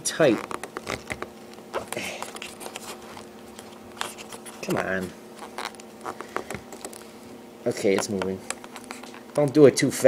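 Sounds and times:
faint steady hum: 0.0s - 10.0s
plastic clicks and scrapes: 0.2s - 7.0s.

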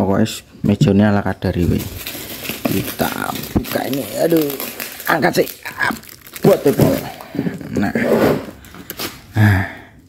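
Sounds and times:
cardboard parcel rustling: 1.4s - 9.3s.

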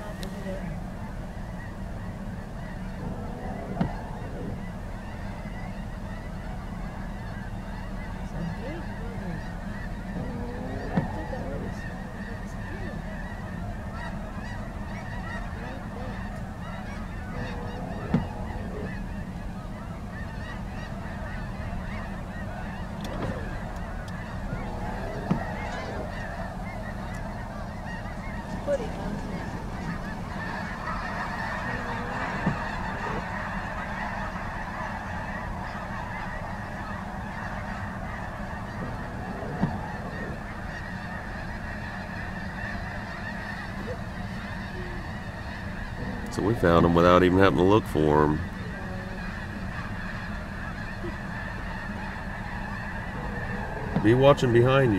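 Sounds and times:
low rumble: 0.0s - 47.8s, 48.4s - 54.9s
geese honking: 0.0s - 54.9s.

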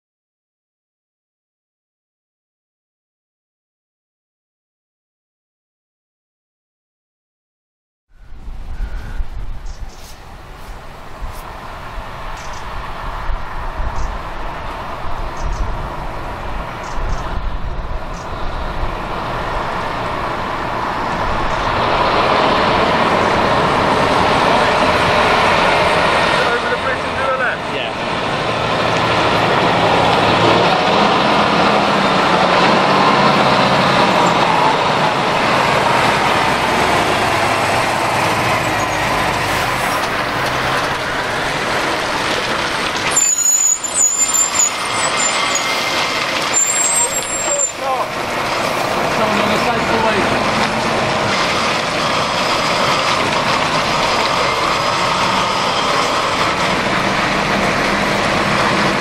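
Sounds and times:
lorry diesel engine running: 10.3s - 59.0s.

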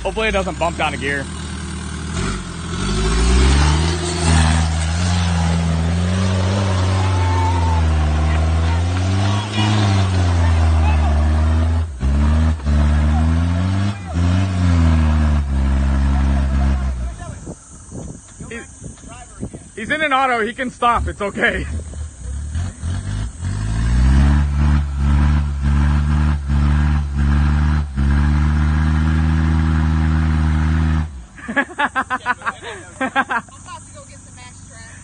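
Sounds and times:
diesel engine labouring: 0.0s - 35.0s.

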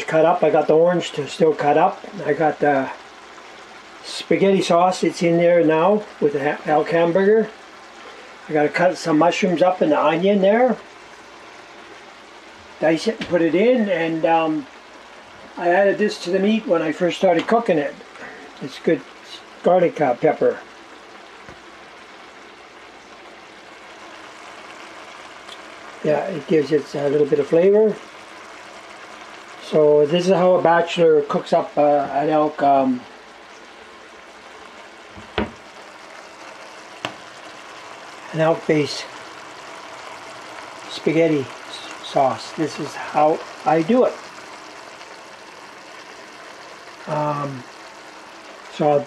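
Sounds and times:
food sizzling and bubbling: 0.0s - 49.0s.

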